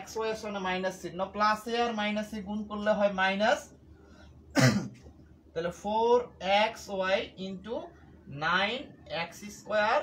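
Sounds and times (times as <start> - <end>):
person coughing: 4.5 - 5.1.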